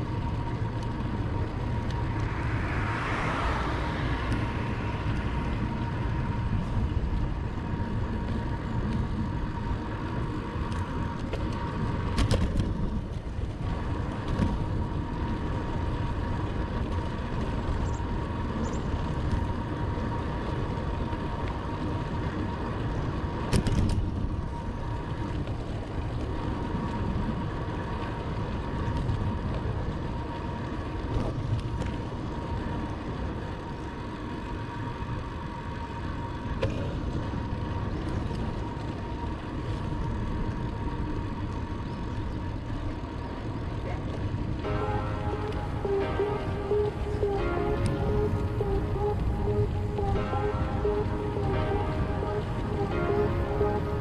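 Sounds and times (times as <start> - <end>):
bicycle tyre and road noise: 0.0 - 54.0
faint steady whine: 0.0 - 54.0.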